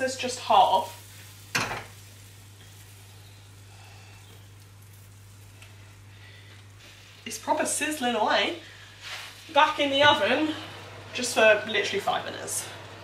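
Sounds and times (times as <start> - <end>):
low steady hum: 0.0 - 13.0
sauce sizzling faintly: 0.0 - 13.0.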